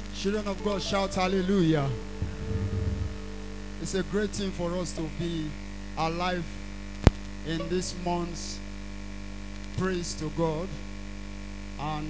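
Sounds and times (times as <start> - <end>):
electrical mains hum: 0.0 - 12.0
low rumbling flutter: 1.9 - 4.6.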